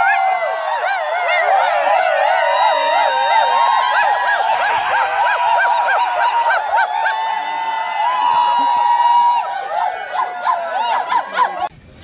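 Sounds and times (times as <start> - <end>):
crowd whistling and hooting: 0.0 - 11.7.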